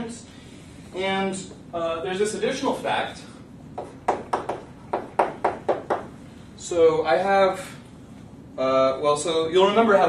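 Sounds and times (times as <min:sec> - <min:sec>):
chalk tapping on blackboard: 0:03.8 - 0:06.1.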